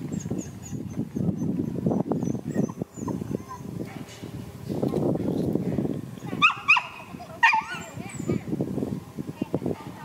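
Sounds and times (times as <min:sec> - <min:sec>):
dog yips: 0:00.1 - 0:03.7, 0:06.4 - 0:07.9.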